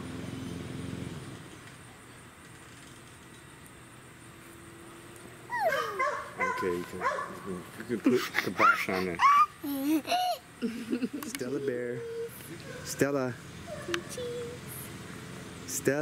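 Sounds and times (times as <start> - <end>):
puppy whining and yipping: 5.5 - 7.3, 13.7 - 14.6.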